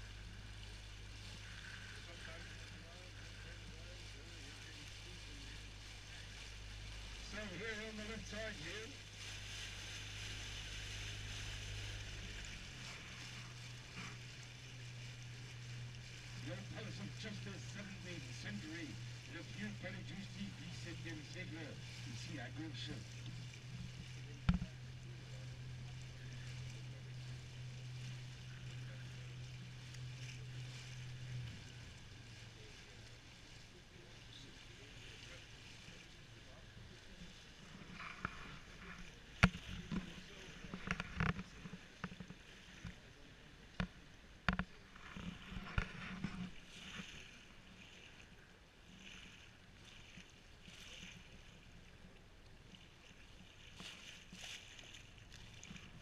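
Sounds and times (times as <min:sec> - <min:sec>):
boat motor humming: 0:00.0 - 0:56.0
voices from passing boat: 0:00.0 - 0:56.0
water washing along hull: 0:00.0 - 0:56.0.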